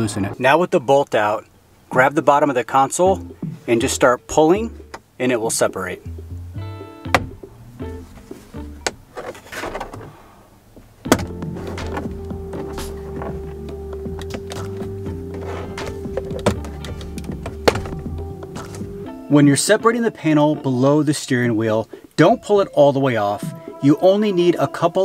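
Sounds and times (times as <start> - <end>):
background music: 3.0 - 25.0.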